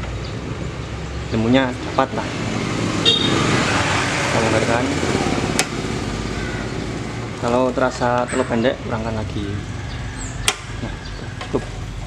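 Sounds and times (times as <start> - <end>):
road traffic noise: 0.0 - 12.0
sharp click: 10.4 - 10.7.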